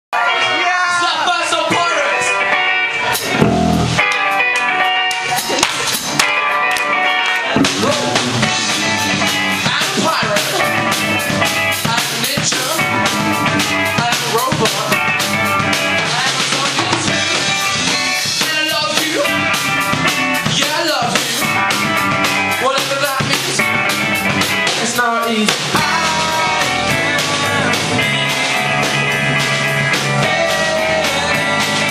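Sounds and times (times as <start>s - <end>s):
drum kit: 0.2s - 31.9s
electric guitars: 0.2s - 31.9s.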